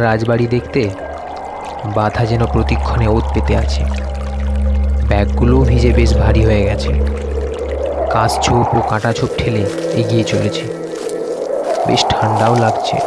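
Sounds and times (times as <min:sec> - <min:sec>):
low drone: 0:00.0 - 0:13.0
noisy whoosh: 0:00.6 - 0:13.0.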